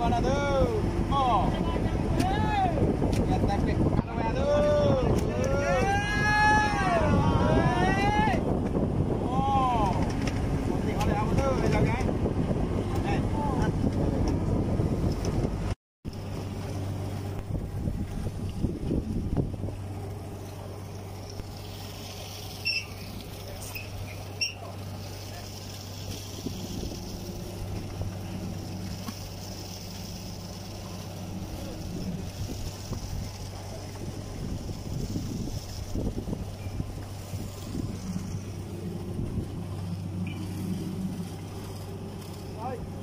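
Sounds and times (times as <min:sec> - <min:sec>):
boat engine humming: 0:00.0 - 0:43.0
men shouting: 0:04.3 - 0:08.4
water splashing: 0:16.1 - 0:43.0.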